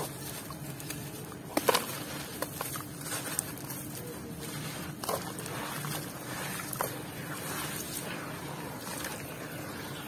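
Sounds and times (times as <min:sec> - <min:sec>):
hands sloshing in muddy water: 0:00.0 - 0:10.0.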